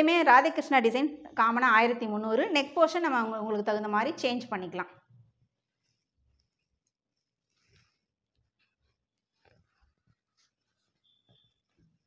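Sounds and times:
fabric rustling and clicking: 5.8s - 12.0s.

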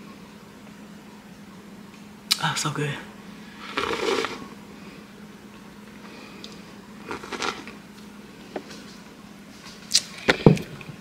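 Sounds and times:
person sipping from a mug: 3.6s - 4.5s.

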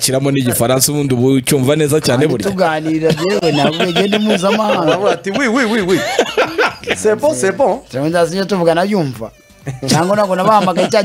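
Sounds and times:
man chuckling: 3.1s - 7.4s.

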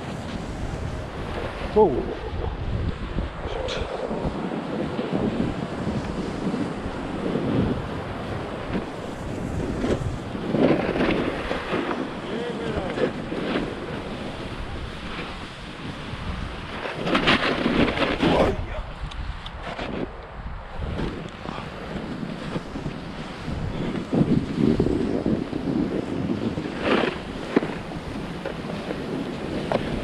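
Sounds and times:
snowboard edges scraping snow: 0.0s - 30.0s
wind on camera microphone: 0.0s - 30.0s.

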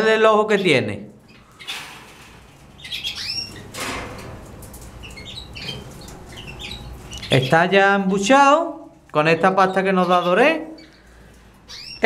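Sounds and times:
nestlings cheeping: 2.7s - 3.8s, 4.8s - 12.0s.

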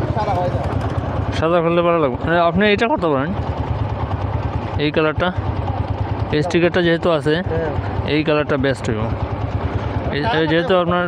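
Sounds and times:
motorcycle engine idling: 0.0s - 11.0s
man speaking: 10.1s - 11.0s.

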